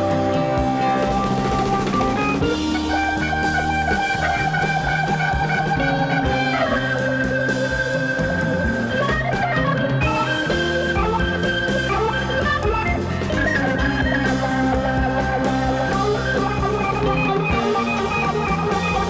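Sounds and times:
drum kit beat: 0:00.0 - 0:19.0
guitar: 0:00.0 - 0:19.0
organ chords: 0:00.0 - 0:19.0.

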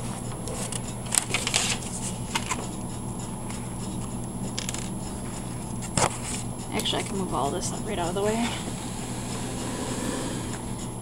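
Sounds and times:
paper rustling: 0:00.0 - 0:02.7
steady low hum: 0:00.0 - 0:11.0.

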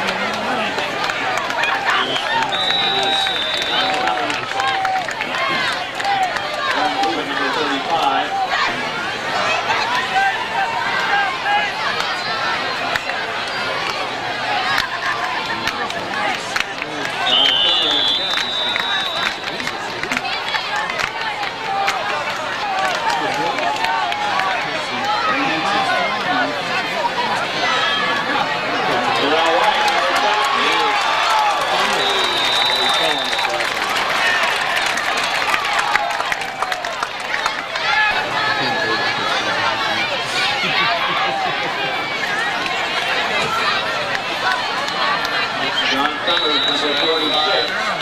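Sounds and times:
crowd talking and calling out: 0:00.0 - 0:48.0
referee's whistle: 0:01.9 - 0:04.2, 0:17.2 - 0:19.6, 0:31.5 - 0:33.6, 0:45.7 - 0:48.0.

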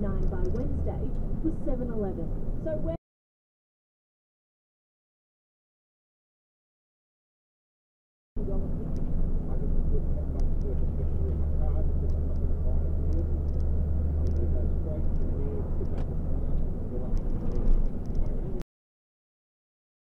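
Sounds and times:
car engine and road noise: 0:00.0 - 0:03.0, 0:08.4 - 0:18.6.

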